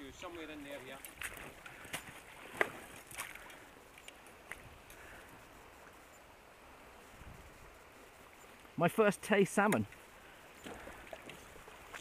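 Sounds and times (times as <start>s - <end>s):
river water flowing: 0.0s - 12.0s
light ticks: 9.6s - 10.0s.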